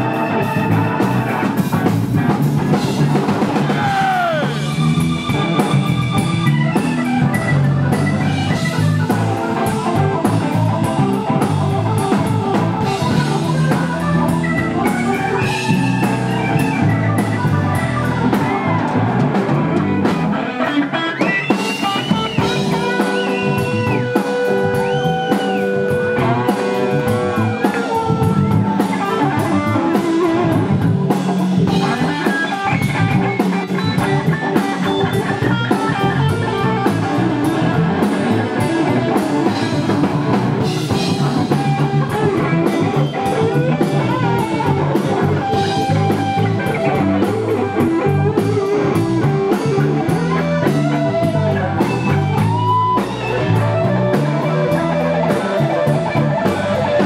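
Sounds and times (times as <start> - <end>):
bass guitar: 0.0 - 57.0
drums: 0.0 - 57.0
electric guitar lead line: 0.0 - 57.0.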